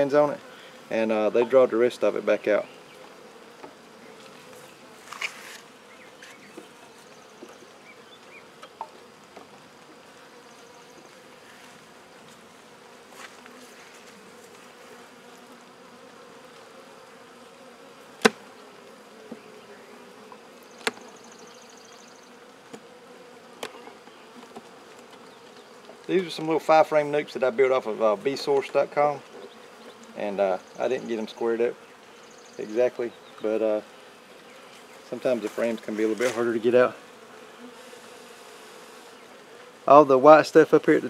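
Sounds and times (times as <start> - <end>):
bees buzzing: 0.0 - 41.0.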